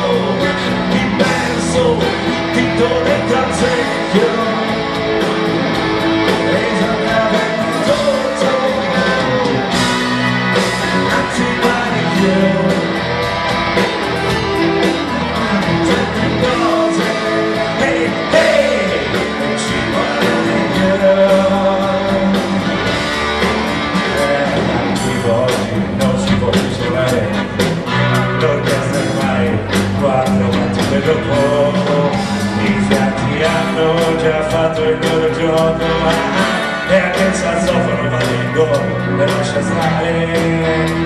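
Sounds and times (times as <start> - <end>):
wandering melody line: 0.0 - 25.1
bass: 0.0 - 41.0
drums: 0.0 - 41.0
electric guitars: 0.0 - 41.0.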